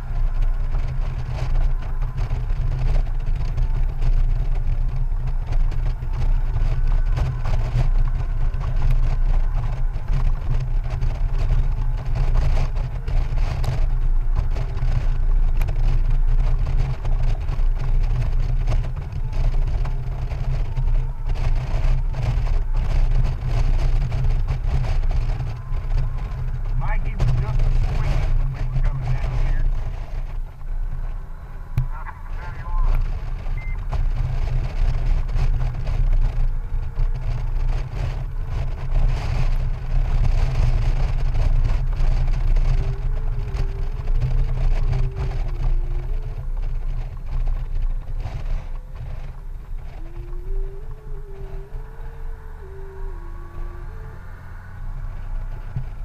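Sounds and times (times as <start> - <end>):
motorcycle engine rumble: 0.0 - 56.0
wind noise on microphone: 0.0 - 56.0.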